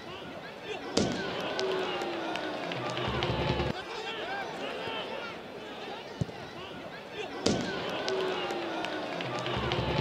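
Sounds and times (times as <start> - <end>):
men shouting and cheering: 0.0 - 10.0.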